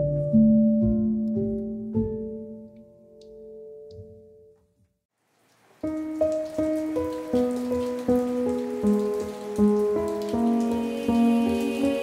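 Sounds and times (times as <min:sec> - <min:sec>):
gentle instrumental music: 0:00.0 - 0:04.9, 0:05.8 - 0:12.0
rain pattering: 0:05.1 - 0:12.0.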